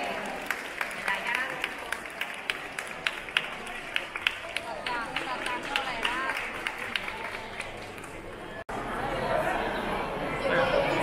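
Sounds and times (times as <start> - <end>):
crowd clapping: 0.0 - 8.7
murmur of voices: 0.0 - 11.0.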